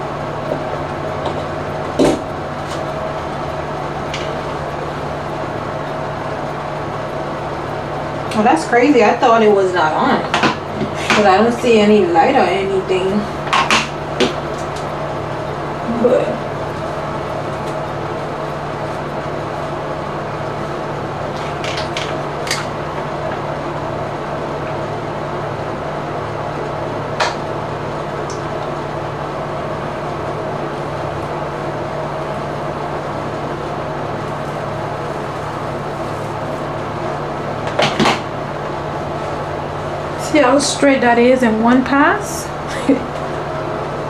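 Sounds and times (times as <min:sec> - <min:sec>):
low mechanical hum: 0:00.0 - 0:44.0.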